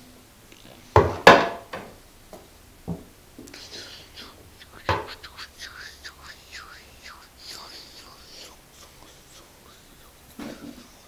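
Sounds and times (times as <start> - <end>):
person whispering: 3.5 - 11.0.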